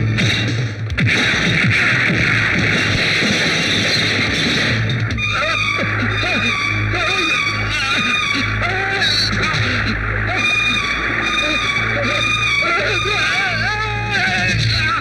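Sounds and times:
dramatic film music: 0:00.0 - 0:15.0
man screaming and howling: 0:08.1 - 0:10.9, 0:11.8 - 0:15.0.

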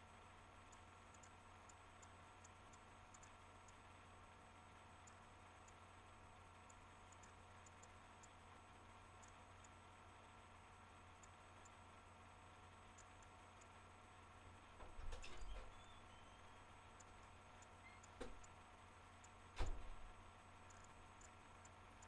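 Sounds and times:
low electrical hum: 0:00.0 - 0:22.0
soft knock and rustle: 0:18.2 - 0:18.4.

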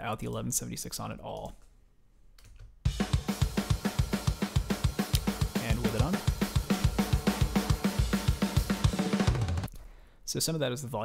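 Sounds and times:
cymbals: 0:02.9 - 0:09.7
rapid kick drum hits: 0:02.9 - 0:09.7
snare drum: 0:02.9 - 0:09.7.

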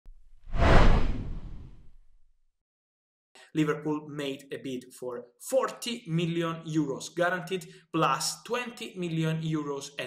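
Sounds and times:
whoosh: 0:00.2 - 0:02.2.

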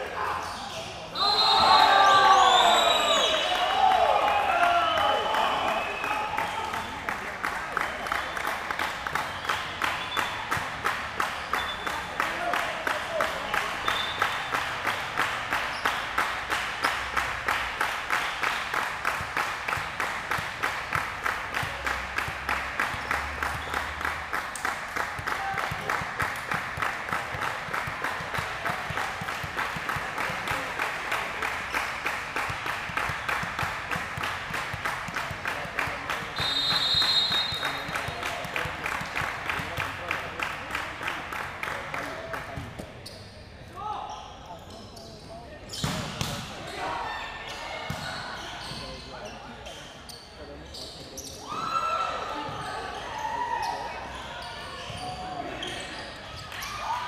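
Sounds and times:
referee's whistle: 0:01.1 - 0:03.8, 0:04.8 - 0:07.0, 0:13.8 - 0:14.5, 0:36.4 - 0:38.1
crowd clapping in rhythm: 0:03.5 - 0:42.6.

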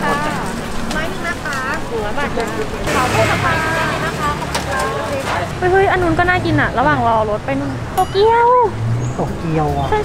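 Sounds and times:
people talking: 0:00.0 - 0:10.0
street traffic rumble: 0:00.0 - 0:10.0.

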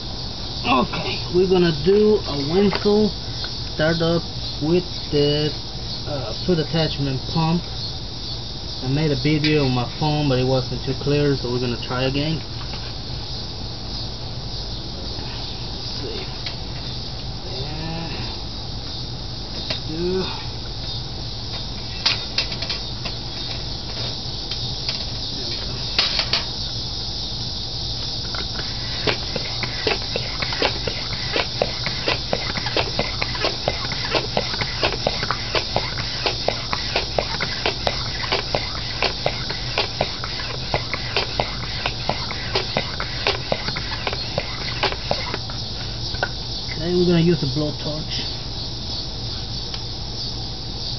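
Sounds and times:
steady high hiss: 0:00.0 - 0:50.9
foot pump being worked: 0:28.2 - 0:45.6
pump clicks: 0:28.3 - 0:45.5.

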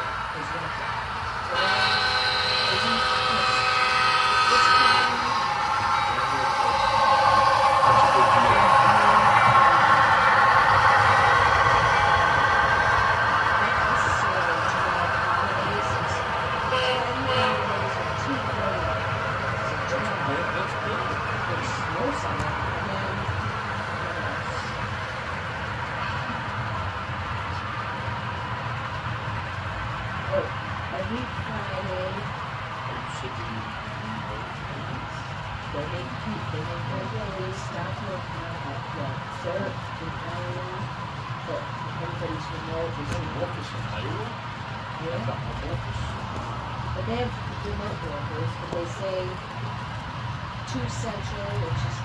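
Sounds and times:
model locomotive running: 0:00.0 - 0:52.0
model locomotive horn: 0:01.5 - 0:07.4, 0:16.6 - 0:18.6.

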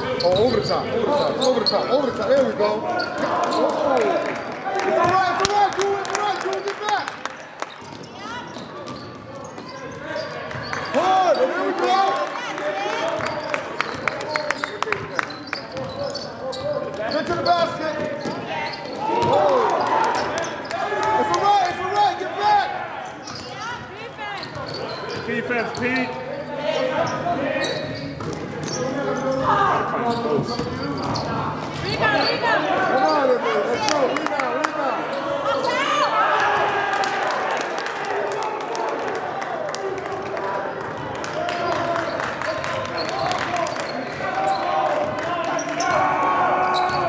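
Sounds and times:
basketball bouncing on gym floor: 0:19.1 - 0:19.4.

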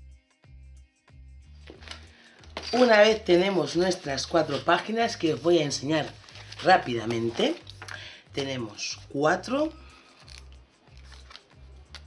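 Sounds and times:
soft music with pulsing beat: 0:00.0 - 0:12.0
paper and card rustling: 0:01.7 - 0:08.0, 0:10.0 - 0:12.0.

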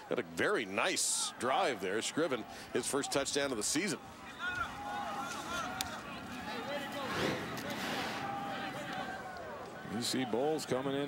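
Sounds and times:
murmur of distant crowd: 0:00.0 - 0:11.0
crowd shouts: 0:00.8 - 0:11.0.

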